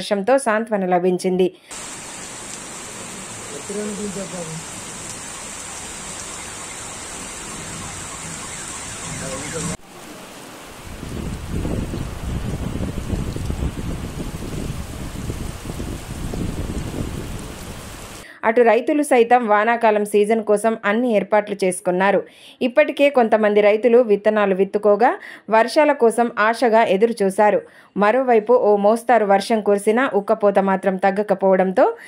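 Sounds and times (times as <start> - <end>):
rain over an open field: 1.7 - 18.2
rain falling on a wet road: 1.8 - 18.2.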